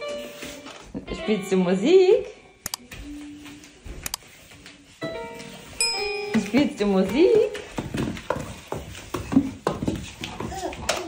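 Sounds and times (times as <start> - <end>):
toddler babbling: 10.5 - 11.0.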